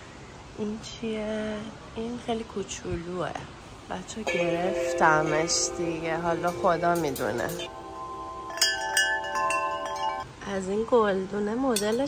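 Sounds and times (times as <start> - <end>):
metal wind chime ringing: 4.3 - 10.3.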